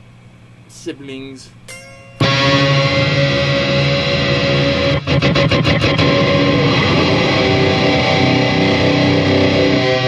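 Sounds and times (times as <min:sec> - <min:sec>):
distorted electric guitar: 0:01.8 - 0:10.0.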